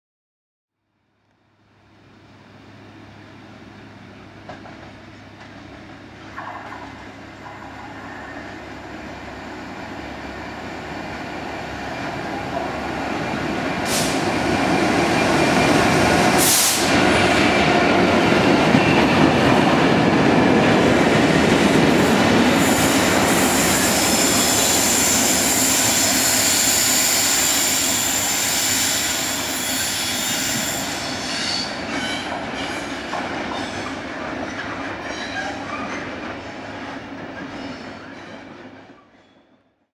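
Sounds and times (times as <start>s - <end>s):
diesel locomotive engine rumble: 1.2s - 39.2s
high wheel squeal: 22.6s - 34.0s.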